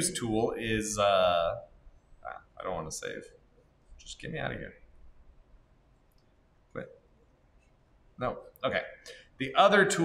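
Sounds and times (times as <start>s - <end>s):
man speaking: 0.0s - 1.6s, 2.2s - 3.3s, 4.0s - 4.8s, 8.2s - 10.0s.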